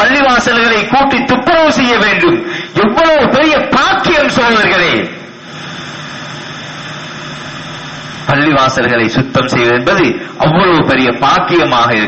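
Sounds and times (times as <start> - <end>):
low hum: 5.2 - 8.6.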